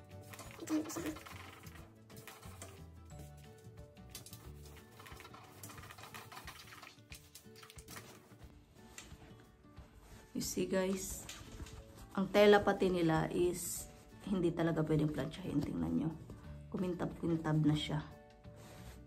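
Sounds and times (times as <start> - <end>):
soft background music: 0.0 - 19.0.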